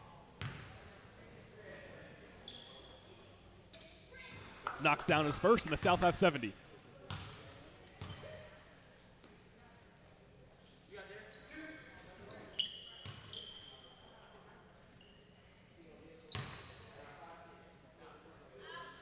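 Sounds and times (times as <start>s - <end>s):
faint echoing voices: 4.7s - 6.7s.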